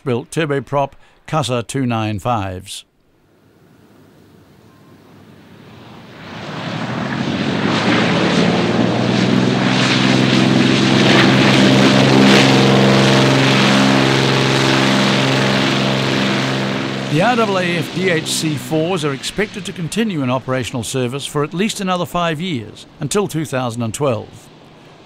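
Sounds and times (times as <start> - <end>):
propeller plane engines landing: 3.1 - 25.0.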